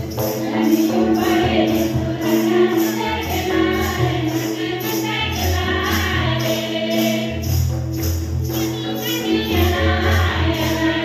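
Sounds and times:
women singing into microphones: 0.0 - 7.7, 8.4 - 11.0
shaken percussion beat: 0.0 - 11.0.

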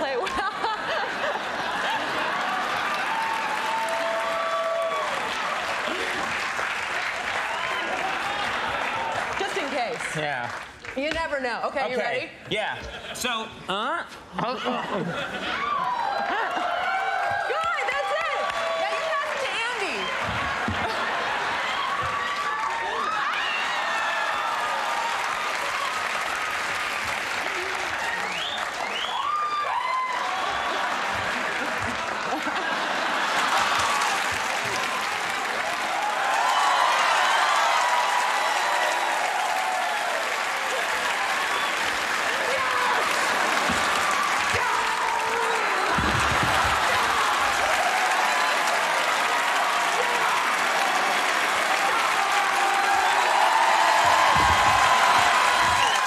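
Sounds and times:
audience applauding: 0.0 - 11.8, 15.0 - 56.0
shouts and voices: 15.6 - 20.2, 42.2 - 43.4, 44.1 - 56.0.

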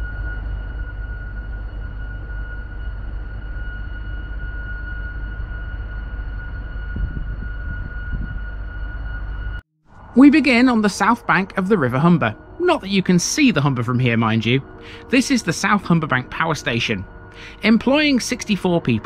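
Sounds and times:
power station turbine drone: 0.0 - 18.5.

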